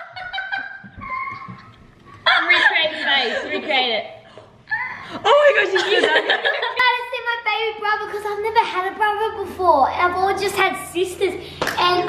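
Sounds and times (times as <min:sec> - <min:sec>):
girls laughing: 0:00.0 - 0:04.1, 0:04.7 - 0:06.9.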